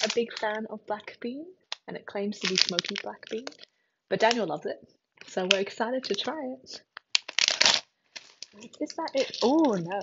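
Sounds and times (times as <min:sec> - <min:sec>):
plastic packaging crinkling: 0:00.0 - 0:00.6, 0:02.4 - 0:04.5, 0:05.2 - 0:06.4, 0:07.0 - 0:10.0
rustling of shopping: 0:00.0 - 0:00.6, 0:01.7 - 0:04.6, 0:05.2 - 0:06.5, 0:07.2 - 0:10.0.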